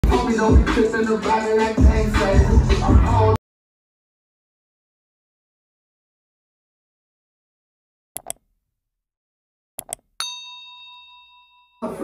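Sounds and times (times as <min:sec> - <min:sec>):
hip hop music: 0:00.0 - 0:03.4
notification bell ding: 0:10.2 - 0:12.0.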